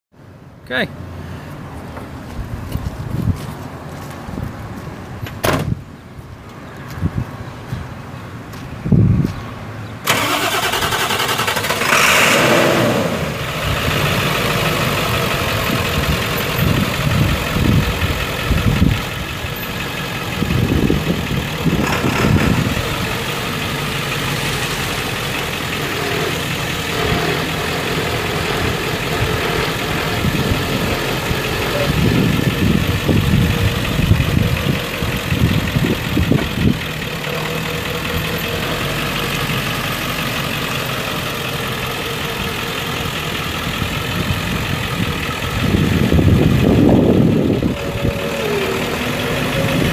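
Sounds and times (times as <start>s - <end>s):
diesel engine idling: 10.0s - 49.9s
diesel engine starting: 10.0s - 49.9s.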